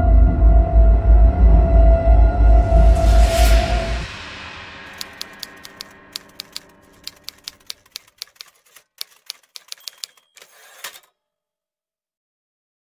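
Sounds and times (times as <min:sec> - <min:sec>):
typewriter carriage rasp: 0:04.9 - 0:11.1
typewriter keys clacking: 0:04.9 - 0:11.1.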